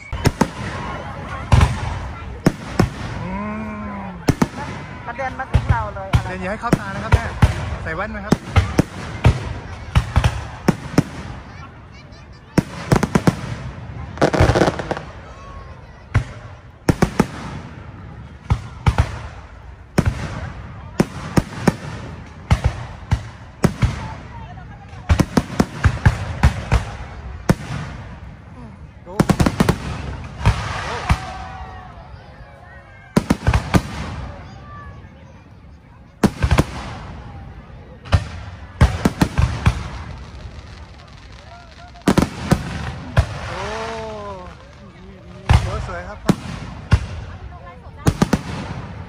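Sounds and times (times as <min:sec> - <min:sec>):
fireworks bursting: 0:00.0 - 0:35.4, 0:36.0 - 0:49.0.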